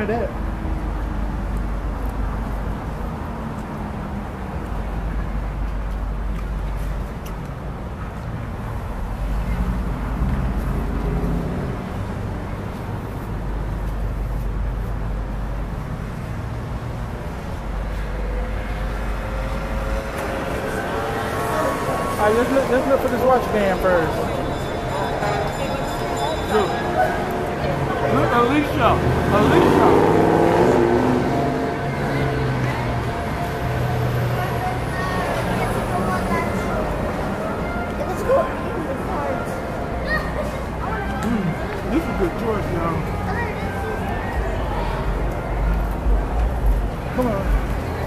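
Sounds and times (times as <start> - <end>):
low hum of mall background: 0.0 - 48.0
road traffic rumble: 0.0 - 48.0
indistinct voices: 18.0 - 48.0.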